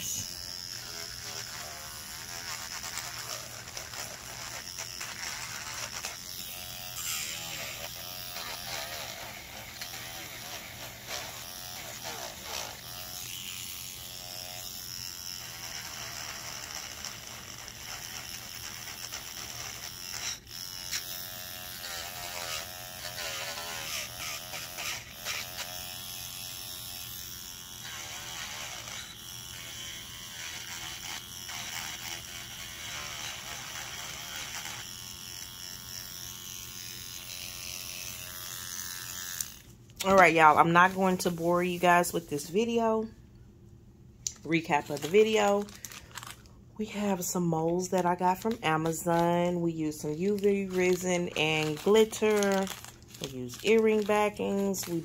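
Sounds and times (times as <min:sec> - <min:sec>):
rotary tool whining: 0:00.0 - 0:40.2.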